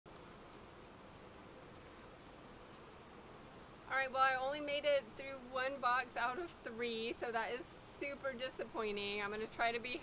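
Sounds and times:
honeybees buzzing: 0.1 - 10.0.

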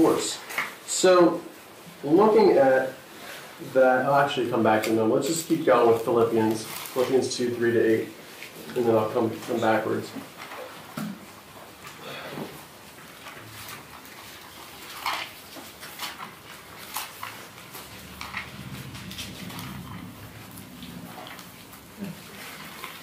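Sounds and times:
paper rustling: 4.6 - 23.0.

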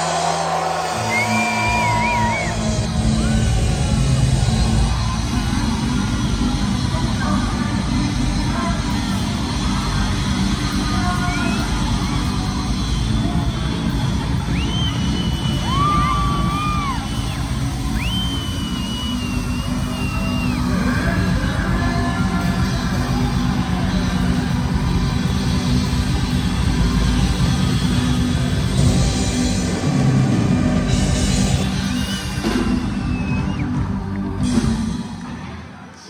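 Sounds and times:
heavy bass: 0.0 - 35.9
live pop band music: 0.0 - 36.0.

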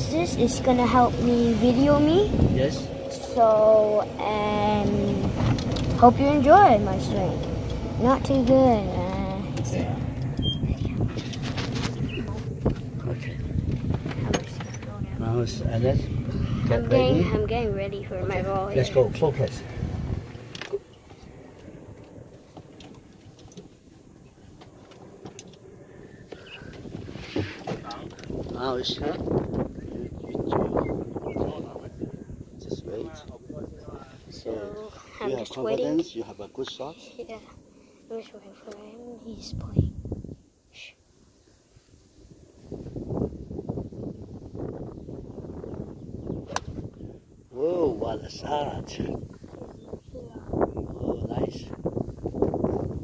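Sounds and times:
golf cart rumbling: 0.0 - 33.6, 43.0 - 53.0
wind buffeting microphone: 0.0 - 36.4, 39.1 - 40.5, 41.8 - 53.0.

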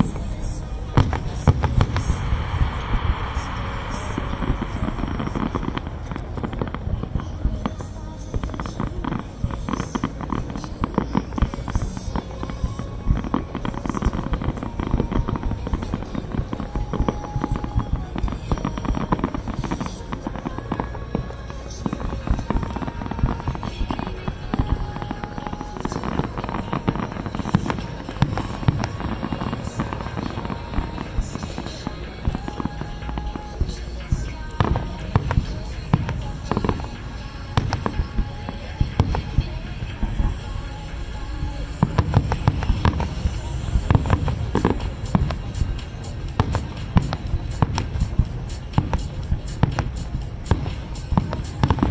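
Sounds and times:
fireworks booming and crackling: 0.0 - 51.9.

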